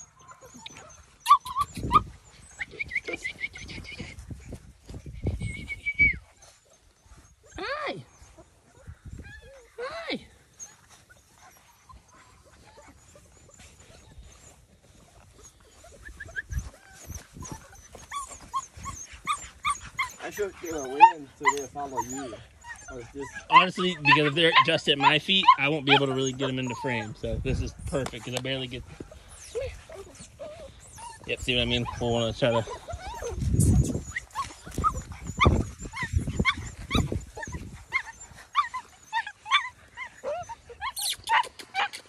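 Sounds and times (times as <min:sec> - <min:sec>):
puppies whining and yipping: 0:00.0 - 0:42.0.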